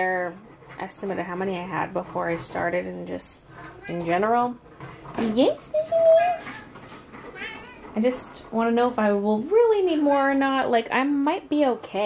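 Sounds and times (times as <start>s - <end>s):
cat meowing: 7.3s - 7.8s.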